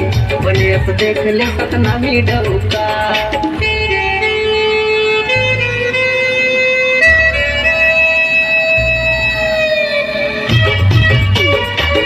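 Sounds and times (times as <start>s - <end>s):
heavy bass: 0.0s - 12.0s
siren-like synth tone: 6.4s - 10.9s.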